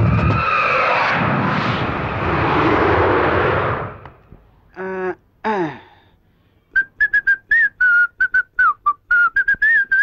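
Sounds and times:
man whistling a quick tune: 0:06.7 - 0:10.0.

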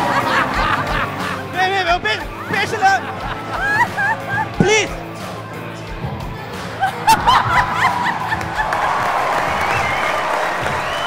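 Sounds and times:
laughter bursts: 0:00.0 - 0:01.6, 0:02.4 - 0:04.8, 0:06.8 - 0:09.0
background music: 0:00.0 - 0:11.0.

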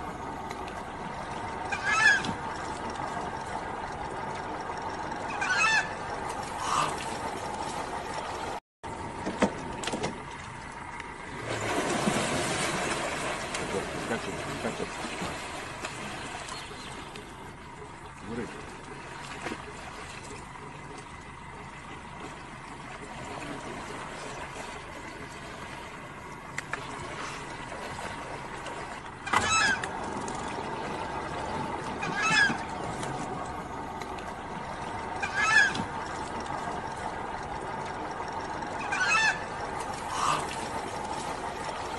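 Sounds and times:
bird calling: 0:01.5 - 0:02.6, 0:04.8 - 0:07.2, 0:16.2 - 0:18.4, 0:29.1 - 0:36.5, 0:38.4 - 0:40.9.

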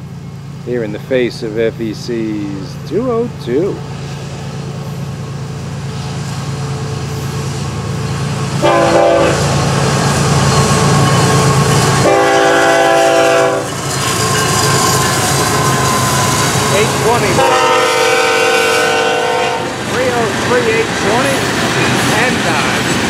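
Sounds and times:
diesel locomotive engine running: 0:00.0 - 0:23.0
train horn blasts: 0:08.6 - 0:09.6, 0:12.0 - 0:13.8, 0:15.6 - 0:19.8.

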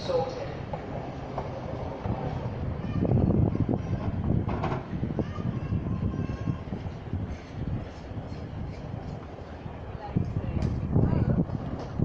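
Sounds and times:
diesel railcar rumble: 0:00.0 - 0:12.0.

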